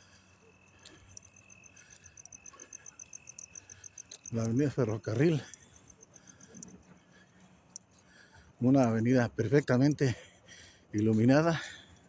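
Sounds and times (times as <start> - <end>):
cricket chirping: 0.0 - 12.0.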